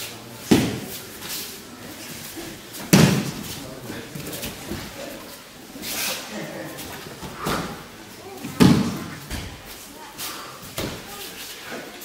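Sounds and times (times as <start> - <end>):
body thudding on a mat: 2.8 - 3.6.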